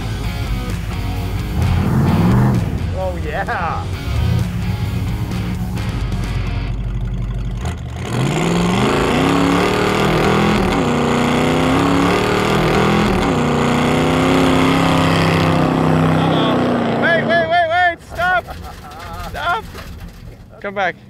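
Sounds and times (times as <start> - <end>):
car engine revving hard: 1.2 - 3.0, 7.5 - 17.5.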